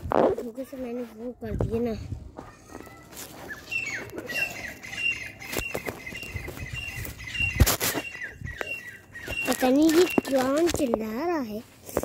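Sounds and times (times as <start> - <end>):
bird chirping: 3.4 - 10.6
loud rustle: 5.5 - 8.2.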